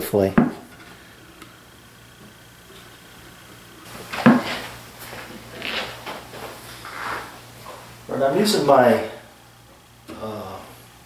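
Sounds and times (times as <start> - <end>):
wood scraping on wood: 3.9 - 7.8.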